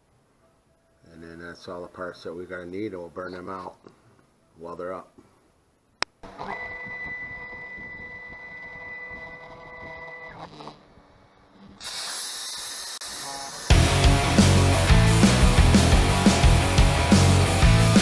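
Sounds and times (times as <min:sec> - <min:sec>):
plasma torch hissing: 0:11.8 - 0:13.8
loud heavy rock music: 0:13.7 - 0:18.0.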